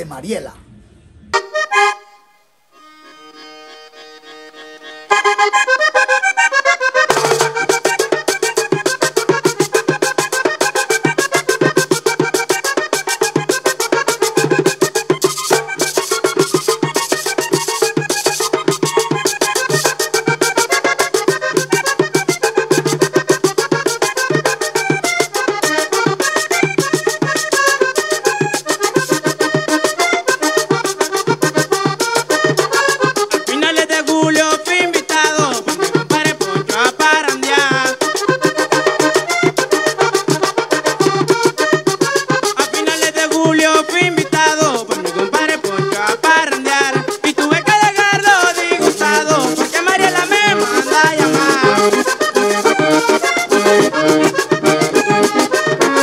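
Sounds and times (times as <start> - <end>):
accordion melody: 1.2 - 56.0
scraper rhythm: 5.1 - 56.0
hand drum beat: 6.9 - 56.0.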